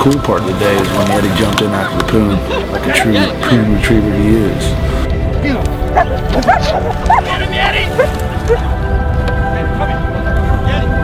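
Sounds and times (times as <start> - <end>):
background music: 0.0 - 11.0
dog yipping and whining: 6.0 - 7.3.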